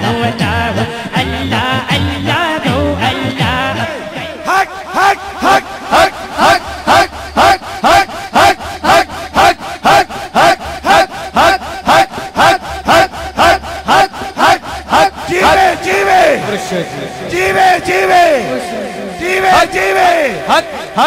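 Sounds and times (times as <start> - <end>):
men chanting in unison: 0.0 - 21.0
crowd chanting: 3.1 - 21.0.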